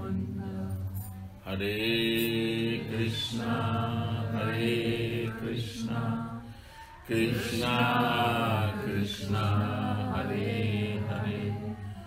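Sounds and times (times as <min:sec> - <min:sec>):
mantra chanting: 0:00.0 - 0:12.0.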